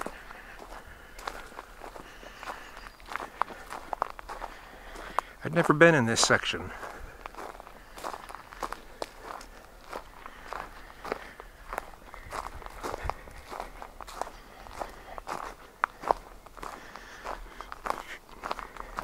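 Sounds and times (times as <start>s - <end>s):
footsteps crunching on wood chips: 0.0s - 19.0s.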